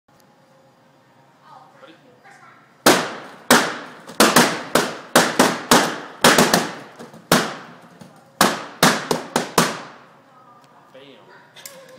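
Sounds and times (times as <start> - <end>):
balloons popping: 2.8 - 10.0.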